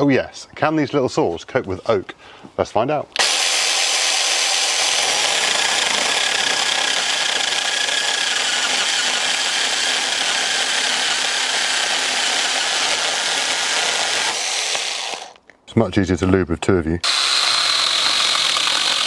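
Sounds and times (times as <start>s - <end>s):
chainsaw cutting through log: 3.2s - 15.4s, 17.0s - 19.0s.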